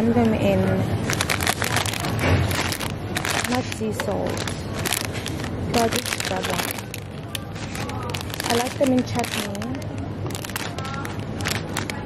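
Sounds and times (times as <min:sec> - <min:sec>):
crisp packets crinkling: 0:01.0 - 0:12.0.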